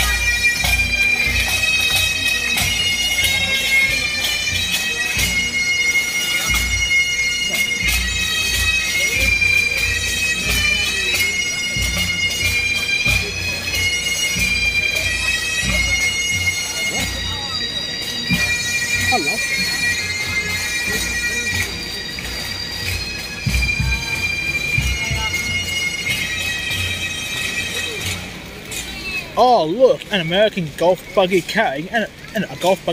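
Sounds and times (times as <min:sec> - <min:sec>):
bagpipes playing a melody: 0:00.0 - 0:32.9.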